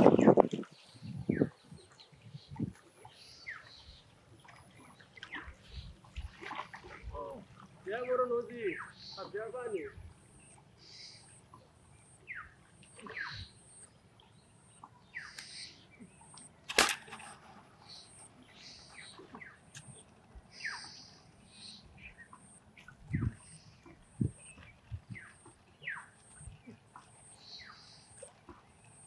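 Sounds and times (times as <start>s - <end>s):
birds chirping: 0.0s - 29.0s
sharp click: 16.3s - 17.3s.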